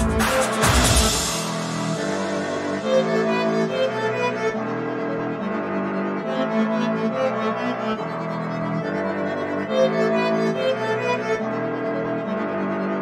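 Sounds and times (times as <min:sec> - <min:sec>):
orchestral strings and brass: 0:00.0 - 0:13.0.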